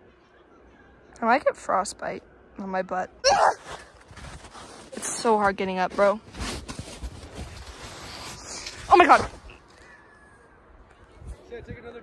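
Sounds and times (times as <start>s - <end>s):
person crying out: 3.2s - 3.6s
rustling of snow and clothing: 3.3s - 9.9s.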